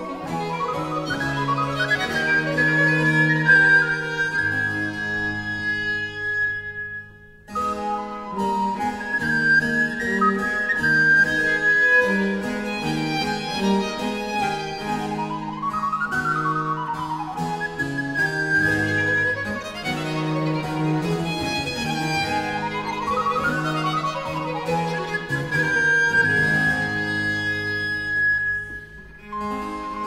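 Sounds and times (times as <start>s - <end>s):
harpsichord: 0.0s - 28.2s
recorder melody: 0.0s - 30.0s
strings: 0.0s - 30.0s.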